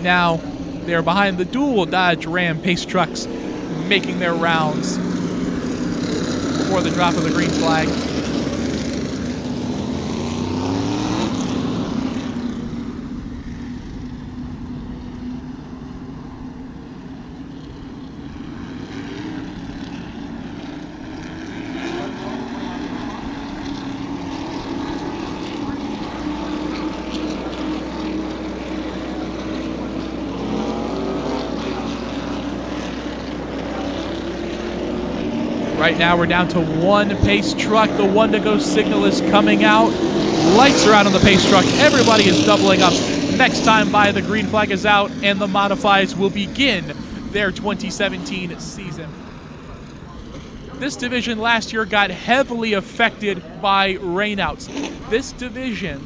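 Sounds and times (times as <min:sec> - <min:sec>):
race car engines droning: 0:00.0 - 0:56.0.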